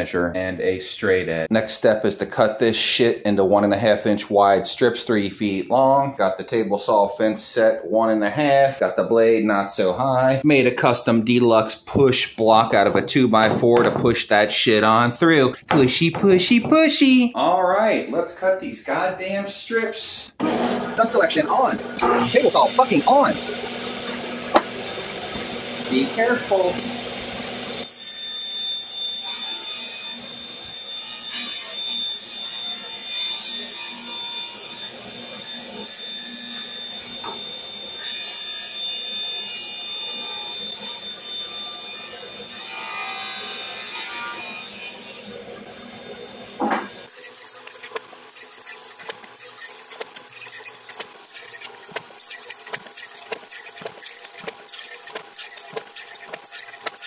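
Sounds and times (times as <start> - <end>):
table saw ripping plywood: 20.4 - 21.4, 46.6 - 57.0.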